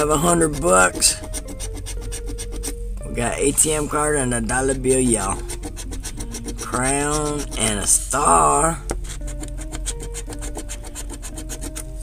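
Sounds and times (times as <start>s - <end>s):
coin scraping lottery ticket: 0.0s - 2.8s, 5.2s - 8.4s, 9.1s - 11.8s.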